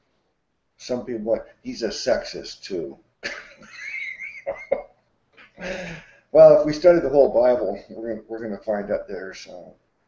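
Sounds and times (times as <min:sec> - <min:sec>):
man laughing wheezily: 0:03.3 - 0:06.2.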